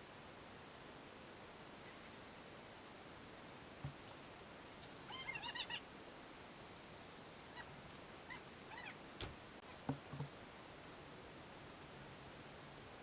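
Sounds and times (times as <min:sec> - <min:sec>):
background hiss: 0:00.0 - 0:13.0
animal calls: 0:05.0 - 0:05.8, 0:07.5 - 0:09.3.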